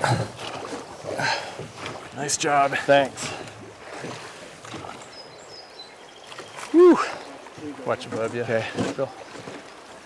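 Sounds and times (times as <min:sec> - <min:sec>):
river current rushing: 0:00.0 - 0:10.0.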